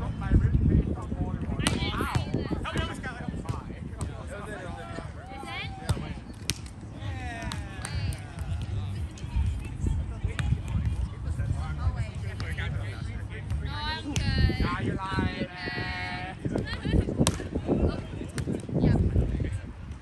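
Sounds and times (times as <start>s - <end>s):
chatter of many voices: 0.0s - 20.0s
wind rumble on microphone: 0.0s - 20.0s.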